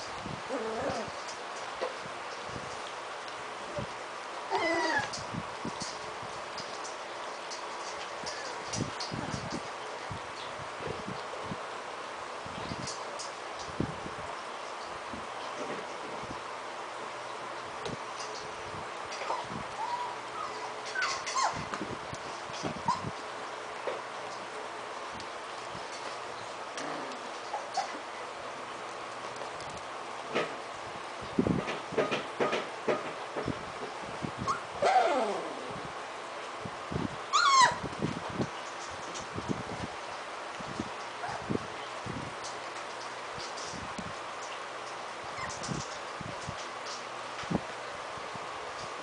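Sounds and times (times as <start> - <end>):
puppy whining: 0.4 - 2.0, 4.5 - 5.3, 8.2 - 8.7, 19.2 - 21.7, 22.8 - 23.2, 26.8 - 28.1, 34.4 - 35.8, 37.3 - 37.8, 41.2 - 41.5, 45.3 - 45.7.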